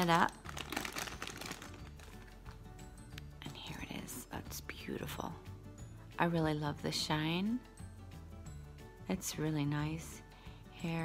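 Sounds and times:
plastic bag crinkling: 0:00.0 - 0:02.5
quiet background music: 0:00.0 - 0:11.0.

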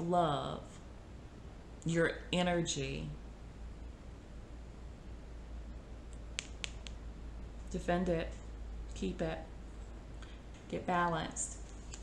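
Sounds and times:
faint steady low hum: 0:00.0 - 0:12.0
sharp little clicks: 0:06.1 - 0:07.0.

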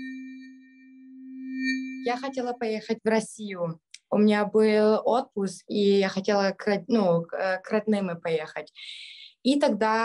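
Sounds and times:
synthesized sustained tone: 0:00.0 - 0:03.2.

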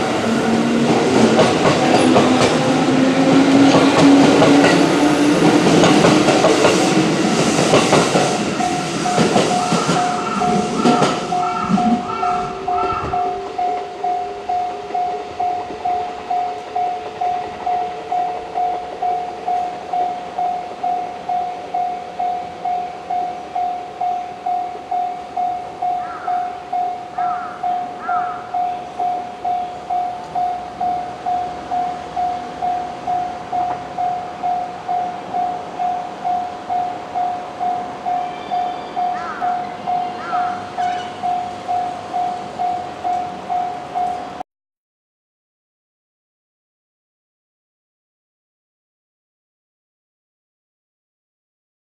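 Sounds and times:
electric train motors rising: 0:00.0 - 0:23.2
level-crossing alarm bell ringing: 0:00.0 - 0:44.4
bird-like chirps: 0:38.2 - 0:41.2.

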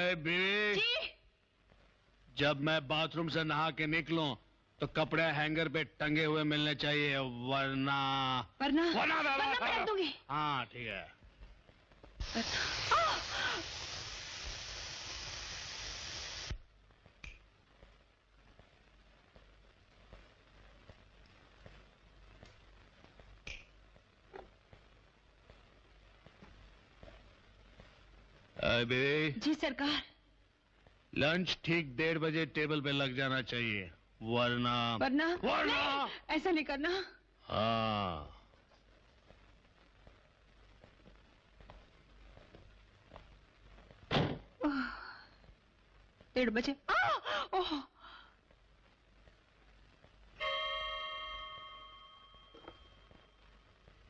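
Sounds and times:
sharp snap: 0:17.2 - 0:17.5, 0:23.4 - 0:23.8.

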